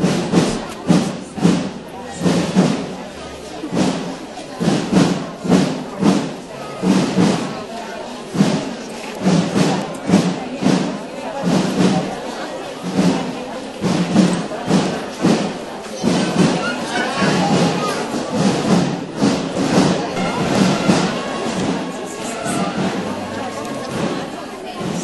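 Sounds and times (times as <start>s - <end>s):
drum beating march rhythm: 0.0s - 25.0s
murmur of crowd voices: 0.0s - 25.0s.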